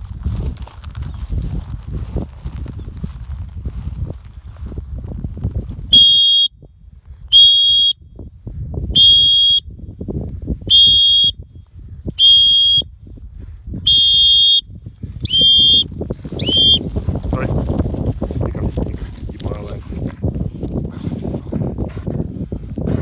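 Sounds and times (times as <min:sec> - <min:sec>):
dog whistle blasts: 0:05.9 - 0:06.6, 0:07.3 - 0:08.0, 0:08.9 - 0:09.7, 0:10.7 - 0:11.4, 0:12.2 - 0:12.9, 0:13.8 - 0:16.9.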